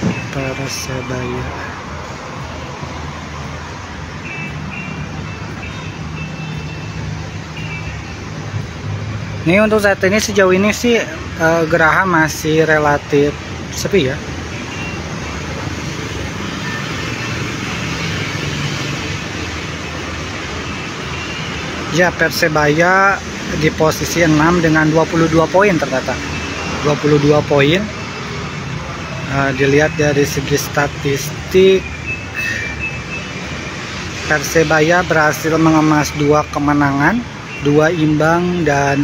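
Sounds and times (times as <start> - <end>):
street traffic passing: 0.0 - 39.0
high-pitched squealing tones: 26.1 - 33.6.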